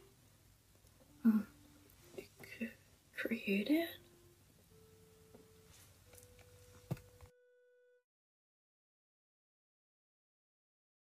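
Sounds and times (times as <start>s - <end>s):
background hiss: 0.0s - 7.3s
faint electronic tone: 3.9s - 8.0s.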